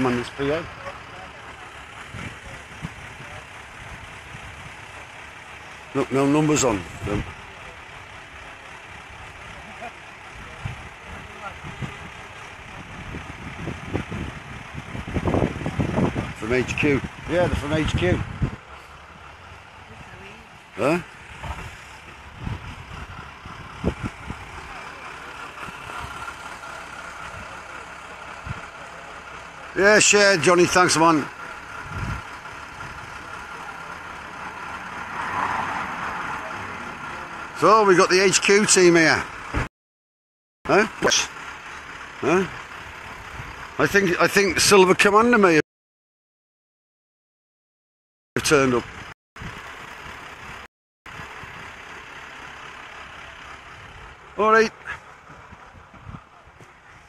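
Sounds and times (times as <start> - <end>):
vehicle engine noise: 0.0 - 39.7, 40.7 - 45.6, 48.4 - 57.0.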